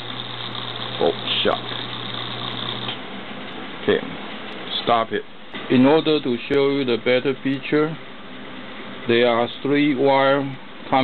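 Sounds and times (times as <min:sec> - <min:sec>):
electric motor humming: 0:00.0 - 0:03.0.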